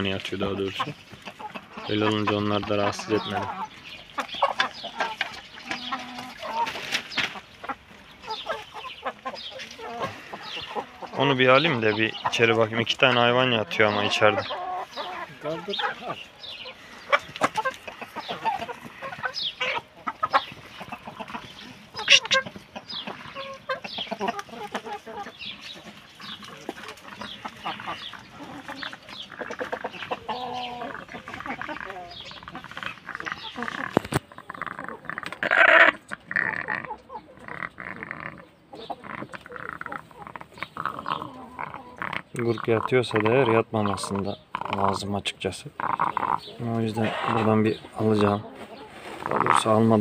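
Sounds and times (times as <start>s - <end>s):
chickens clucking: 0.0s - 50.0s.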